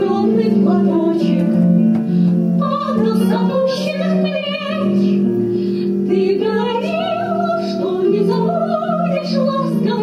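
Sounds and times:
woman singing: 0:00.0 - 0:01.9, 0:02.5 - 0:10.0.

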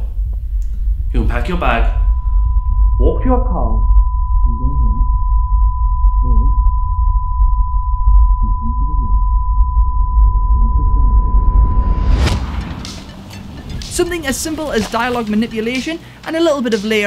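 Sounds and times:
reversed cinematic impact: 0:00.0 - 0:04.6, 0:09.7 - 0:15.6
high-pitched ringing tone: 0:00.0 - 0:12.3
deep rumbling bass: 0:00.0 - 0:15.8.

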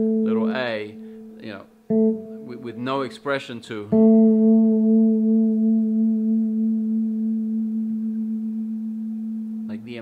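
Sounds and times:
electric bass guitar note: 0:00.0 - 0:03.0.

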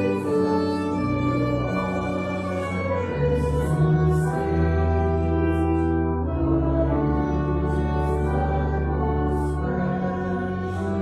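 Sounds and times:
organ chords: 0:00.0 - 0:11.0
voices singing a hymn: 0:00.0 - 0:11.0.

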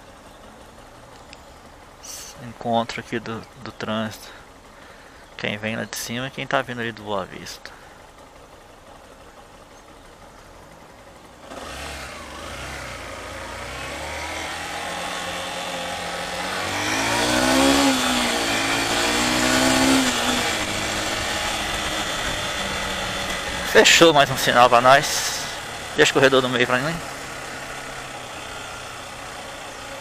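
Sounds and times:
motorcycle engine accelerating: 0:07.4 - 0:30.0.

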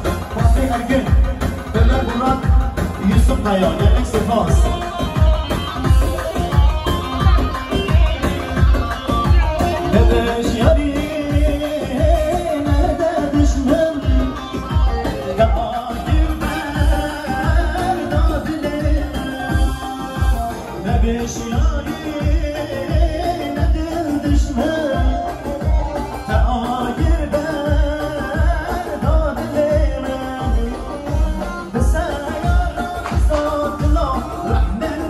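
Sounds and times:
live band music over speakers: 0:00.0 - 0:35.0
man singing into microphone: 0:00.0 - 0:35.0
steady drum beat: 0:00.0 - 0:35.0.

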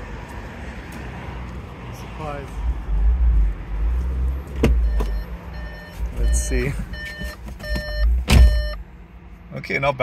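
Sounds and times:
road traffic rumble and hiss: 0:00.0 - 0:10.0.

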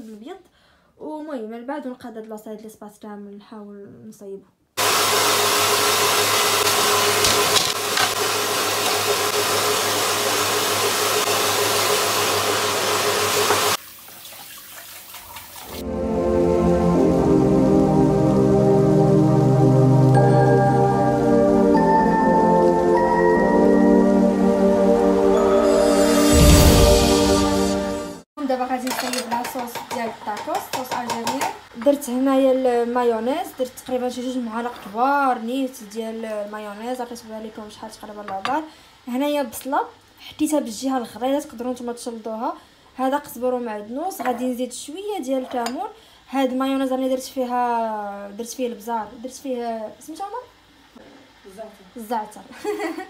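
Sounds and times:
woman talking: 0:00.0 - 0:04.5, 0:28.4 - 0:53.0
electric fan whooshing: 0:24.3 - 0:28.2
cutlery clinking on ceramic plates: 0:28.9 - 0:29.9.

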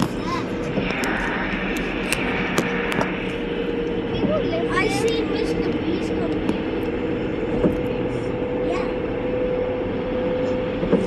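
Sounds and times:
wind rushing: 0:00.0 - 0:08.4
moving vehicle drone: 0:00.0 - 0:11.0.

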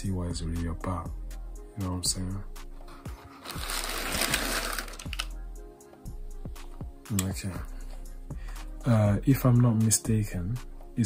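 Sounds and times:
background music: 0:00.0 - 0:11.0
tissue paper crinkling: 0:02.8 - 0:05.3.

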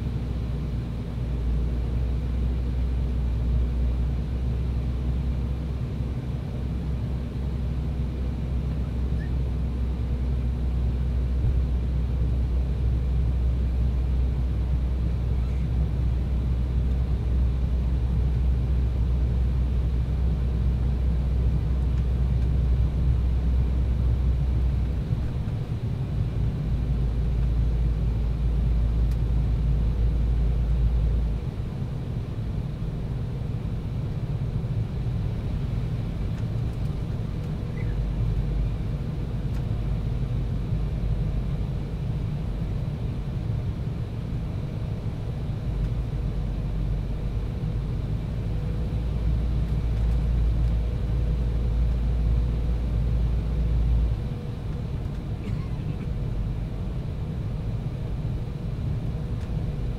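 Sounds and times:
airliner cabin engine drone: 0:00.0 - 0:59.9.

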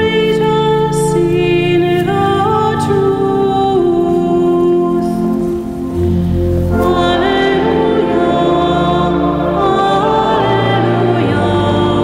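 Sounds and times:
organ chord: 0:00.0 - 0:12.0.

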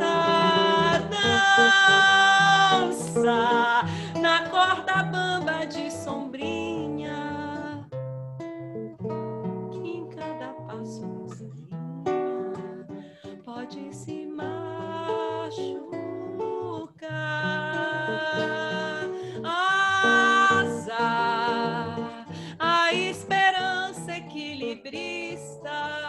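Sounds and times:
woman singing: 0:00.0 - 0:08.0, 0:09.4 - 0:26.0
acoustic guitar plucking: 0:00.0 - 0:26.0.

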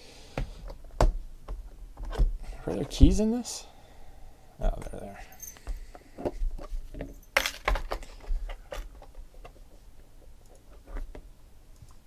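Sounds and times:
keys jingling: 0:05.3 - 0:05.6.

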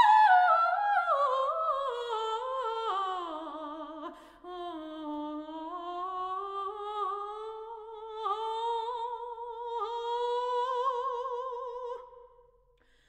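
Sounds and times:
operatic soprano singing: 0:00.0 - 0:12.3.

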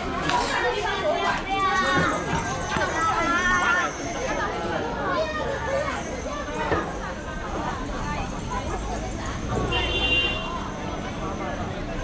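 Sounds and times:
children's voices: 0:00.0 - 0:09.6
people talking: 0:00.0 - 0:12.0.

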